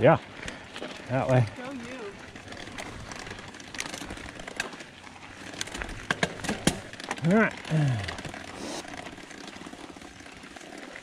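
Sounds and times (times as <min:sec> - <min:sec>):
bike clicks and rattles: 0:00.0 - 0:11.0
bike tyres rolling on gravel: 0:00.0 - 0:11.0.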